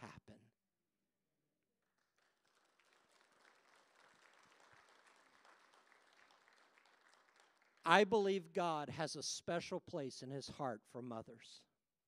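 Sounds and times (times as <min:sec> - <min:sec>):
faint applause: 0:02.0 - 0:08.1.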